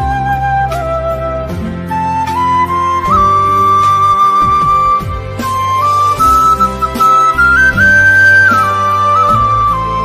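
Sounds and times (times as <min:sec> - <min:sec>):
flute melody: 0:00.0 - 0:10.0
backing accompaniment: 0:01.9 - 0:10.0.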